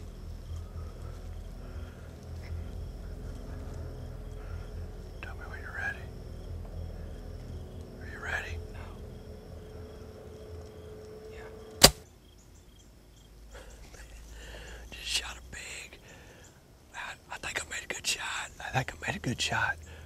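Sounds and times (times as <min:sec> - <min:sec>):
low whispering: 0:00.0 - 0:11.8, 0:13.5 - 0:20.0
arrow hitting with sharp crack: 0:11.8 - 0:12.0.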